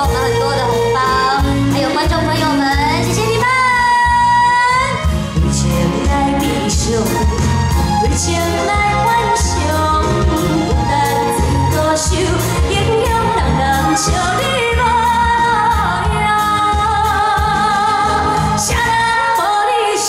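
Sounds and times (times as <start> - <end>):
backing track with bass and beat: 0.0 - 19.5
woman singing into microphone: 0.0 - 20.0.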